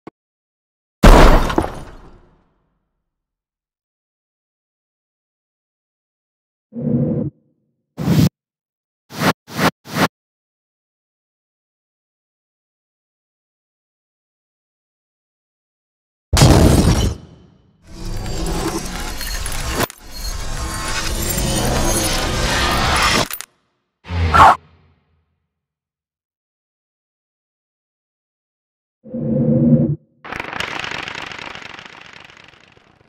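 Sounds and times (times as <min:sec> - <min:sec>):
loud shattering sound effect: 0:01.0 - 0:02.2, 0:16.4 - 0:23.3
dense rapid crackling: 0:30.3 - 0:33.0.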